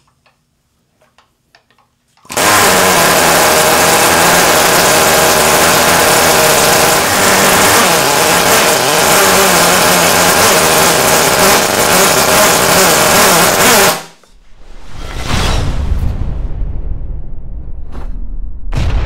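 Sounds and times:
rotary engine buzzing at high speed: 0:02.3 - 0:14.2.

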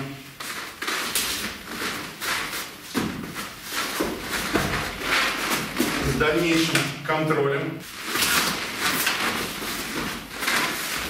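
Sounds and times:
feet shuffling on mats: 0:00.3 - 0:06.9
clothing rustling: 0:00.3 - 0:07.0, 0:07.8 - 0:11.0.

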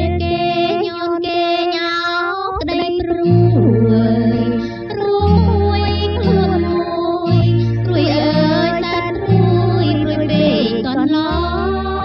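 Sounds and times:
woman singing: 0:00.0 - 0:12.0
light musical accompaniment: 0:02.6 - 0:12.0.

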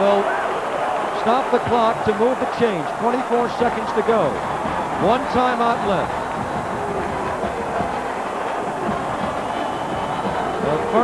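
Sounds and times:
stadium crowd din: 0:00.0 - 0:11.0.

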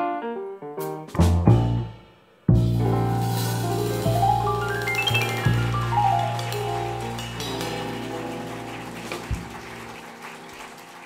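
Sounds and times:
jazz piano bass and drums chord: 0:00.0 - 0:10.3.

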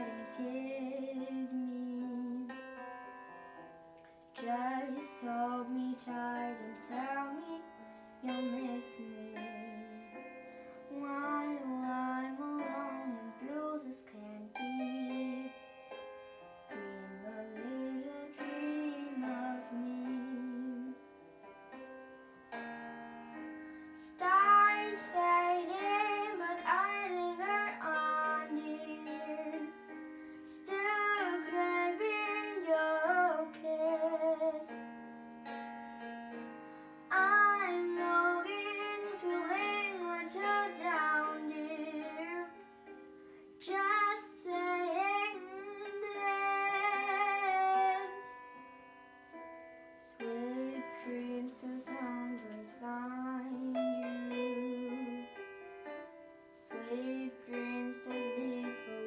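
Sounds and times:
girl singing: 0:00.0 - 0:02.7, 0:04.4 - 0:16.0, 0:16.7 - 0:21.2, 0:23.8 - 0:34.9, 0:37.1 - 0:42.8, 0:43.5 - 0:48.6, 0:50.0 - 0:59.0
piano backing track: 0:00.0 - 0:59.0.

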